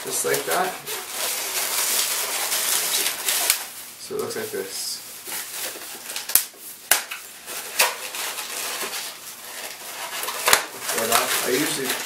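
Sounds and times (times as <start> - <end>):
balloons squeaking and rubbing: 0.0 - 4.7, 7.4 - 12.0.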